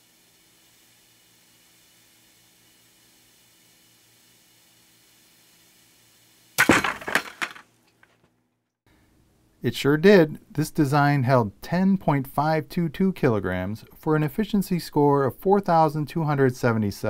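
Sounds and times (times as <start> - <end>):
rattling clatter of collapse: 6.6 - 7.6
wooden model tower cracking: 6.6 - 8.2.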